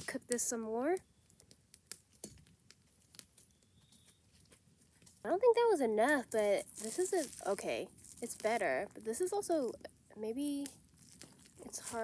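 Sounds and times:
wood fire crackling: 0.0 - 12.0.

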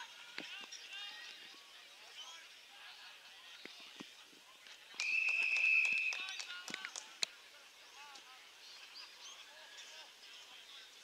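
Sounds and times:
whistle blown: 5.0 - 6.2.

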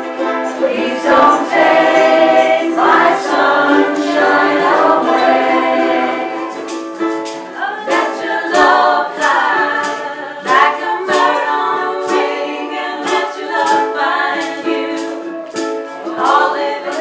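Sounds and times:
ukuleles strumming: 0.0 - 17.0
women singing together: 0.2 - 6.9, 7.5 - 17.0.

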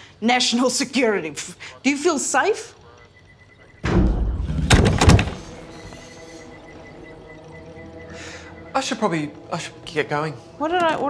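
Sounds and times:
faint steady tone: 1.3 - 11.0
loud thud: 3.8 - 5.5.

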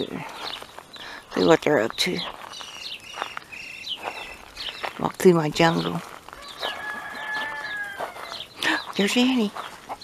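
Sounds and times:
chickens calling: 0.0 - 10.0.

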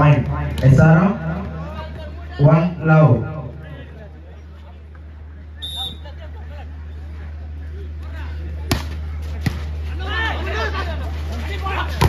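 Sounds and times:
voices of players and spectators: 0.0 - 12.0.

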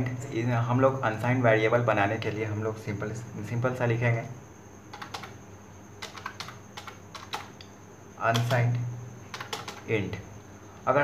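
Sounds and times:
computer keyboard typing: 4.9 - 5.4, 6.0 - 10.2.

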